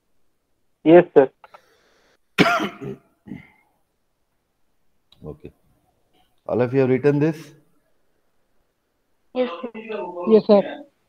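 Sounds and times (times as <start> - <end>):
man clearing throat: 2.4 - 3.6.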